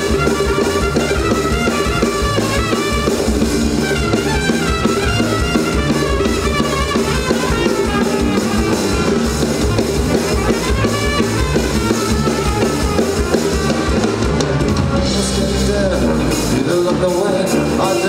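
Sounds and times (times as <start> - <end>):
saxophone: 0.0 - 15.4
drum kit beat: 0.0 - 18.0
electric guitar: 0.0 - 18.0
tuba bass line: 0.0 - 18.0.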